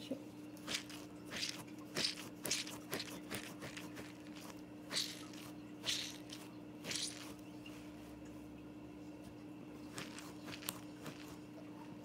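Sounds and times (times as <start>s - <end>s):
plush toy squeezed rustling: 0.7s - 7.4s, 10.0s - 11.4s.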